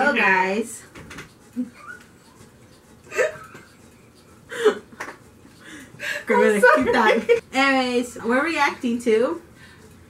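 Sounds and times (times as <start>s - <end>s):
woman giggling: 3.1s - 3.9s, 4.5s - 5.0s, 6.0s - 7.4s.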